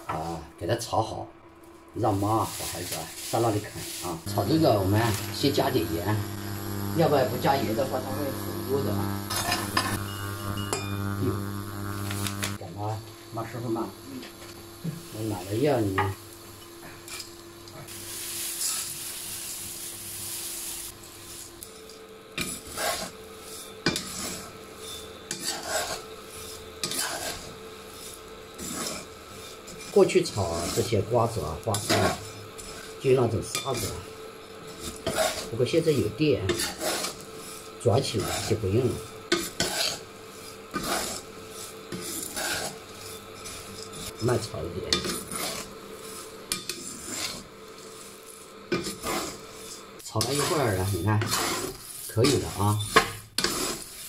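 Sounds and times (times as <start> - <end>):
induction cooker whine: 0.0 - 54.0
seeds frying in a pan: 2.0 - 54.0
metal spatula scraping wok: 18.1 - 19.3, 20.4 - 38.6, 39.3 - 44.3, 44.9 - 54.0.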